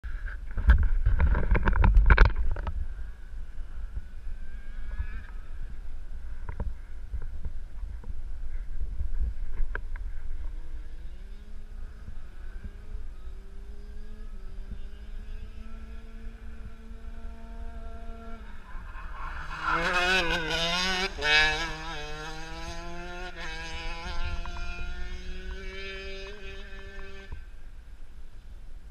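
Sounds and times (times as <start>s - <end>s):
wind on microphone: 0.0s - 28.0s
faint steady engine tone: 0.0s - 28.9s.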